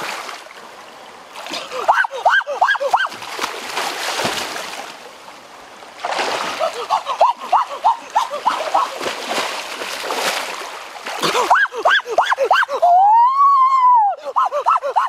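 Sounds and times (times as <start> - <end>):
water splashing as person wades: 0.0 - 12.2.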